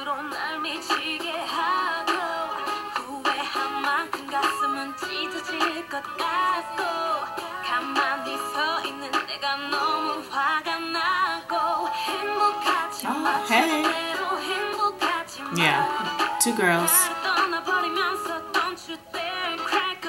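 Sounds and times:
r and b ballad backing track: 0.0s - 20.0s
woman singing: 0.0s - 20.0s.

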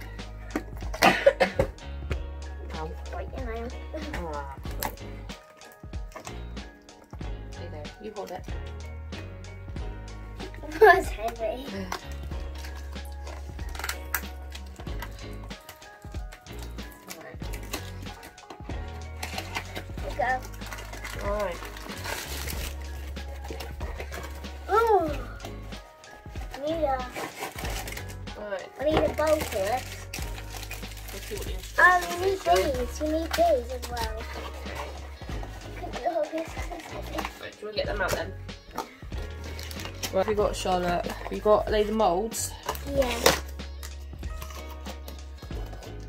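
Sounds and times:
child's voice: 10.6s - 12.0s, 24.7s - 25.4s, 26.5s - 27.3s, 28.8s - 29.8s, 31.8s - 34.9s, 35.6s - 37.4s, 42.7s - 43.4s.

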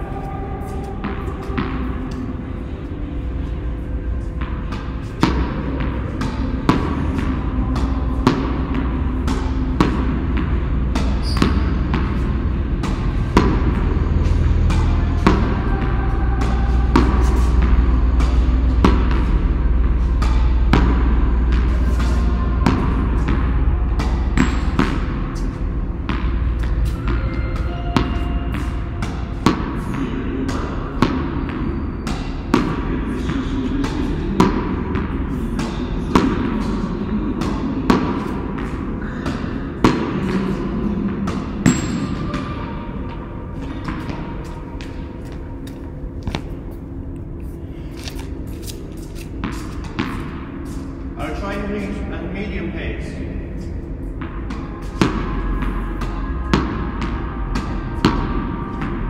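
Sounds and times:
racket hitting tennis ball: 3.7s - 46.8s, 48.0s - 50.9s, 54.1s - 59.0s
ball bouncing on concrete: 41.3s - 46.6s.

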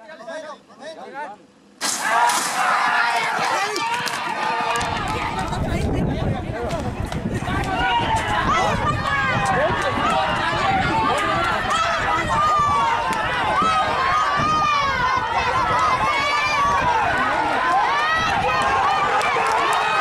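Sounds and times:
spectators shouting: 1.8s - 5.6s, 7.4s - 20.0s.

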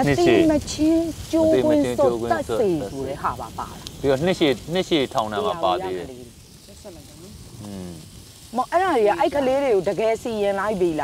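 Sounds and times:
faint food sizzling on grill: 0.0s - 11.0s
people talking: 0.0s - 11.0s.

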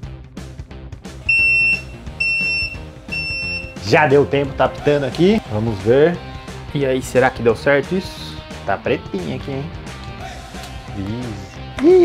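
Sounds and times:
electronic timer beeps: 1.3s - 3.8s.

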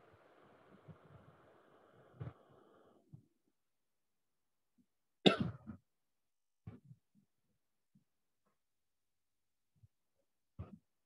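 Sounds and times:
person coughing: 5.2s - 5.7s.

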